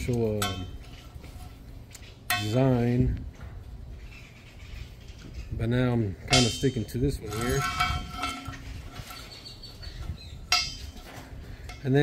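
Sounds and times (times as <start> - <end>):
metal hinge plates clinking: 0.0 - 1.4, 2.0 - 3.0, 6.2 - 12.0
sharp ringing metallic clink: 2.3 - 2.9, 6.3 - 9.3, 10.5 - 11.1.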